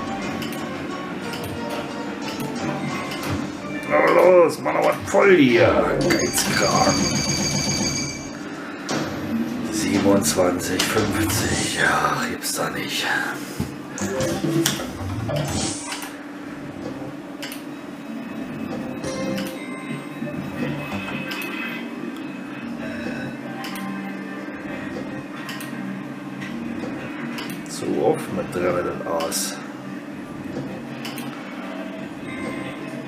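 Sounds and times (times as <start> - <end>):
slot machine game music: 0.0 - 8.5, 13.9 - 15.8, 18.2 - 26.0
jingling payout chimes: 5.8 - 8.4
clicks: 17.4 - 17.7.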